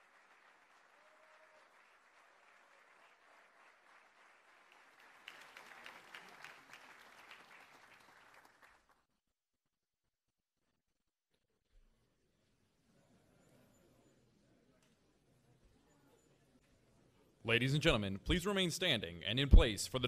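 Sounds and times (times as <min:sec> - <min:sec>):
audience applause: 0:00.0 - 0:09.0.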